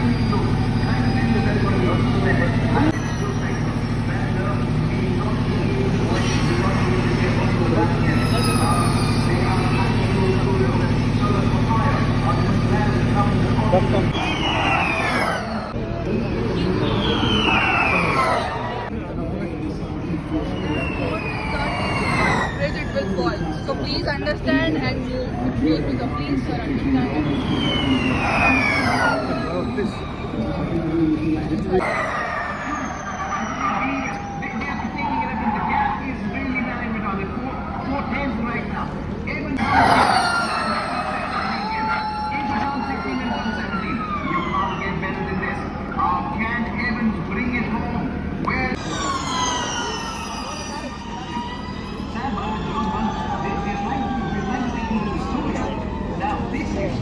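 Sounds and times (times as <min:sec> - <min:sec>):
electric race car passing: 0:00.0 - 0:18.9, 0:20.1 - 0:38.9, 0:47.4 - 0:56.9
crowd chatter: 0:00.0 - 0:57.0
low mechanical drone: 0:00.0 - 0:57.0.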